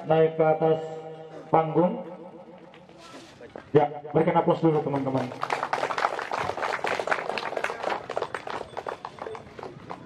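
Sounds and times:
small crowd clapping: 4.5s - 10.0s.

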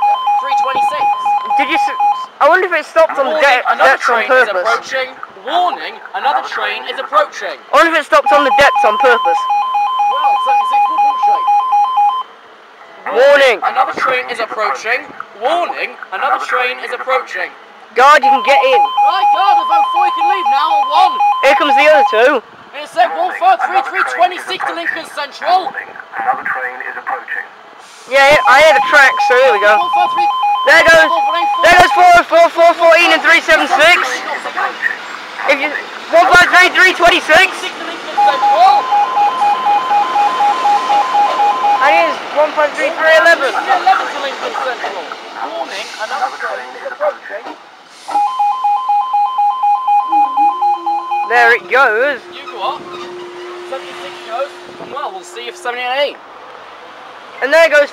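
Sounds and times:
level crossing two-tone alarm: 0.0s - 2.3s, 8.2s - 12.3s, 18.1s - 22.3s, 28.2s - 32.3s, 38.2s - 42.2s, 48.1s - 52.5s
train passing: 30.9s - 48.4s, 50.0s - 57.9s.

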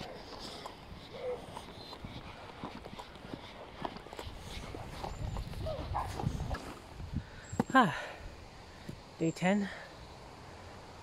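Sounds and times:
footsteps walking outdoors: 0.0s - 9.8s.

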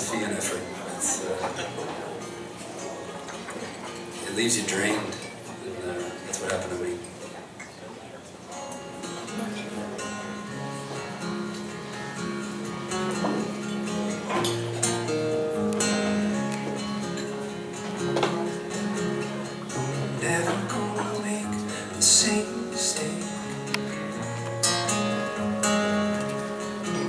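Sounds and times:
acoustic guitar playing: 0.0s - 27.0s.

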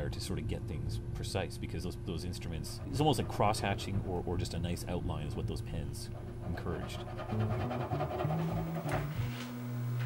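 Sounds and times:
low bass music notes: 7.2s - 10.0s.

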